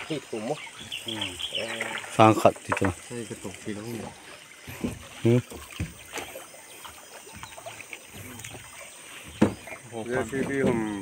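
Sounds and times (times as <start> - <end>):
water washing against boat hull: 0.0 - 11.0
light wooden knocks: 2.4 - 3.1, 4.6 - 6.4, 7.3 - 11.0.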